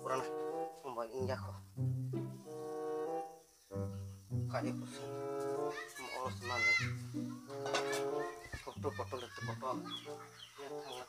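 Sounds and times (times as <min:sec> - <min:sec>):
chickens clucking: 0:03.8 - 0:11.0.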